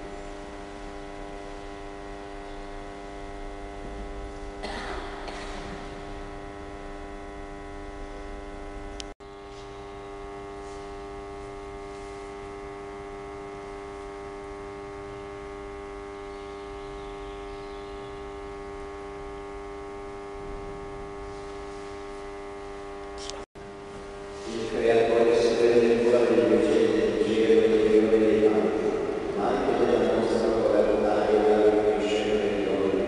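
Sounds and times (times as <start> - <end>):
electrical mains hum: 0.0 - 33.0.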